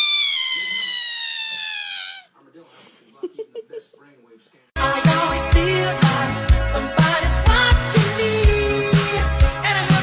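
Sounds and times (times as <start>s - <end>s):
cat yowling: 0.0s - 2.3s.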